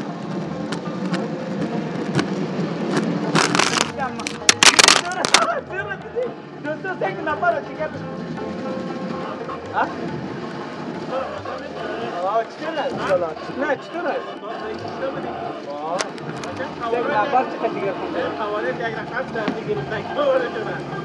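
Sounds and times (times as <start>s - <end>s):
music playing: 0.0s - 21.0s
men talking: 3.7s - 8.5s, 9.2s - 10.2s, 11.0s - 21.0s.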